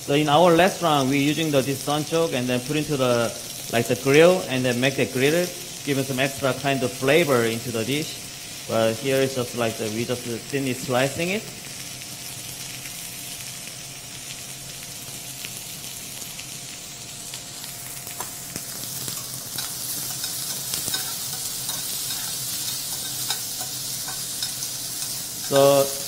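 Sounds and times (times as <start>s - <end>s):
mushrooms sizzling in oil: 0.0s - 26.0s.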